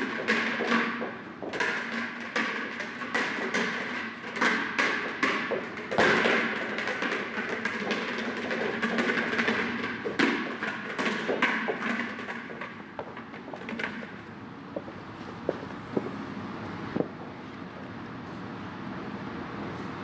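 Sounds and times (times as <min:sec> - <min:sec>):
footsteps: 0:00.0 - 0:16.4.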